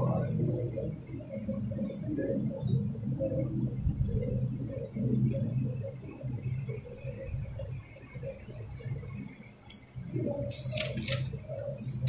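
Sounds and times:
muffled murmur of voices reciting: 0.0 - 12.0.

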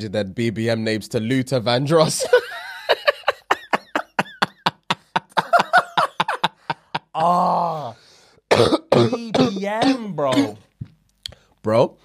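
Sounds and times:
men laughing hard: 2.2 - 7.9.

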